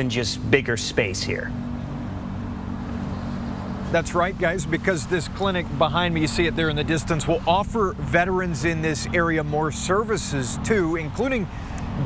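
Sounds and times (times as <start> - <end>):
faint outdoor noise: 0.0 - 12.0.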